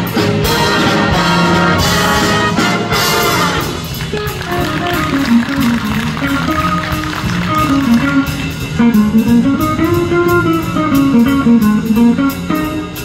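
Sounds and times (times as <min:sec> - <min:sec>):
brass chord: 0:00.0 - 0:13.0.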